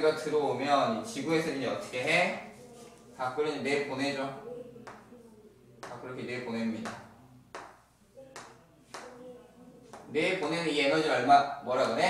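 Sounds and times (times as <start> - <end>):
chalk tapping on blackboard: 6.8 - 9.2, 9.9 - 10.2.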